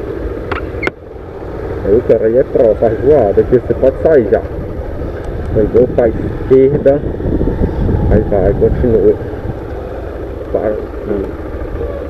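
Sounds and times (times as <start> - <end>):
motorcycle engine running: 0.0 - 12.0
wind on microphone: 4.4 - 10.3.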